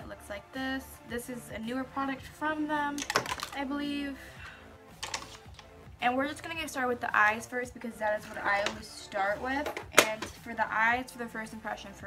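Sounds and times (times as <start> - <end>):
makeup packaging clicks and taps: 3.0 - 3.6, 5.0 - 5.8, 8.6 - 8.8, 9.6 - 10.4.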